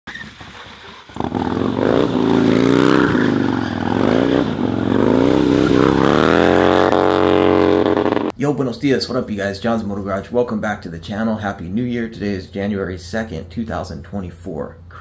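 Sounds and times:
motorcycle engine revving: 0.4s - 8.3s.

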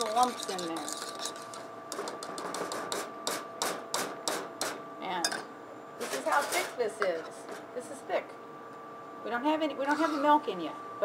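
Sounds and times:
whisk tapping metal saucepan: 0.0s - 3.0s.

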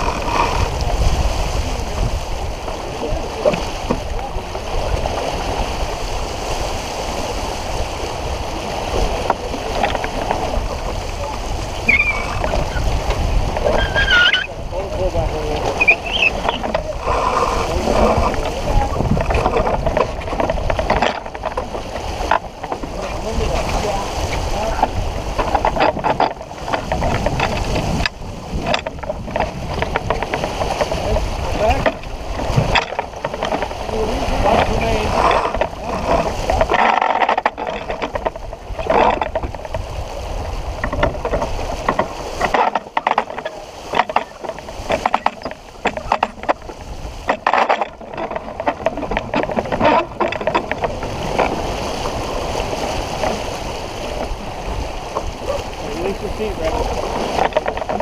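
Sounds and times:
water rushing along hull: 0.0s - 58.0s
wind buffeting microphone: 0.0s - 58.0s.

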